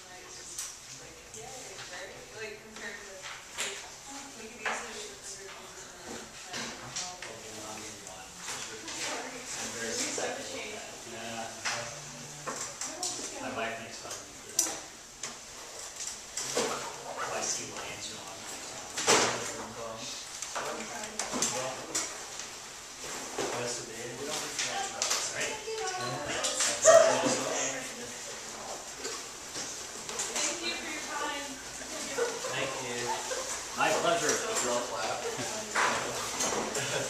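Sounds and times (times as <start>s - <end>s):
chatter of voices: 24.2s - 28.9s, 29.7s - 37.0s.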